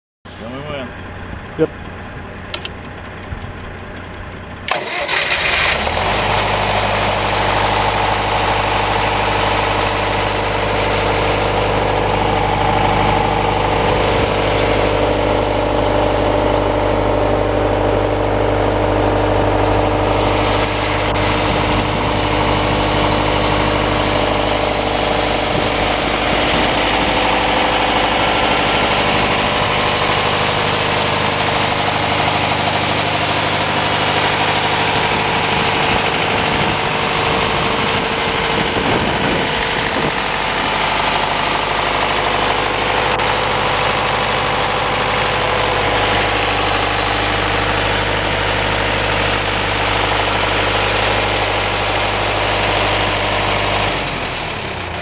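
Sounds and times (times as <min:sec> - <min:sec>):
diesel generator engine running: 0:00.3 - 0:55.0.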